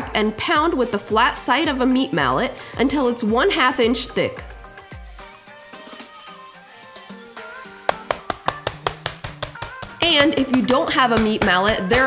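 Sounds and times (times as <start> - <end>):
plucked background music: 0.0 - 12.0
meat mallet thudding on board: 7.9 - 12.0.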